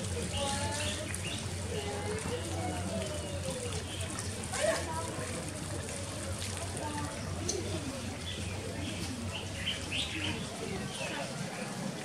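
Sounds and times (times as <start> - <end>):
birds chirping: 7.5 - 10.5.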